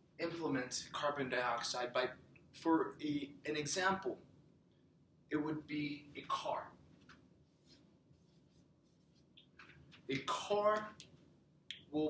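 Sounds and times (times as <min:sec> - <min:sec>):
marker writing on whiteboard: 0:07.4 - 0:11.1.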